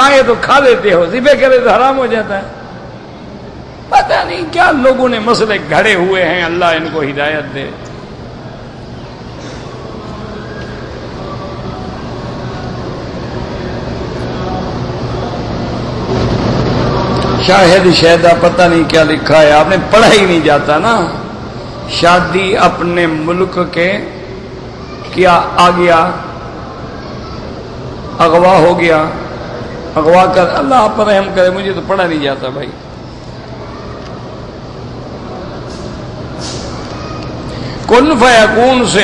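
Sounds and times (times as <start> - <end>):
faint hum: 0.0 - 39.0
man speaking: 3.9 - 7.8, 37.9 - 39.0.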